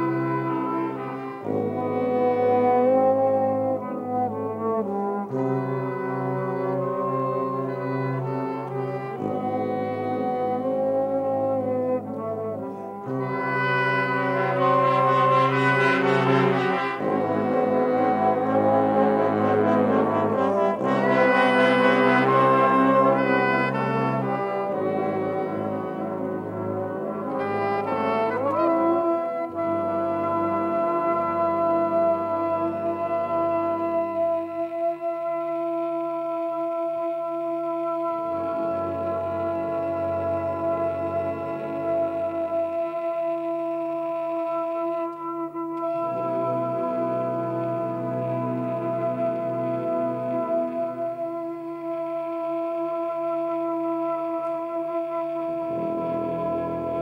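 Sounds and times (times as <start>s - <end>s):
brass ensemble playing chords: 0.0s - 57.0s.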